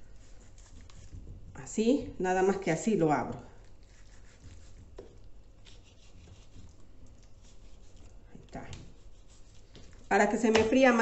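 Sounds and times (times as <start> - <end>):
knife slicing raw meat: 0.0 - 1.6, 3.6 - 10.4
blade scraping on cutting board: 3.9 - 8.1.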